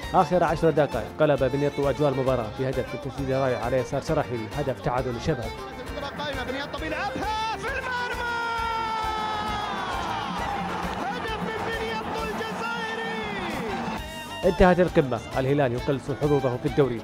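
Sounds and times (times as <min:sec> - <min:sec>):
background music: 0:00.0 - 0:17.0
commentator shouting goal cry: 0:05.8 - 0:14.0.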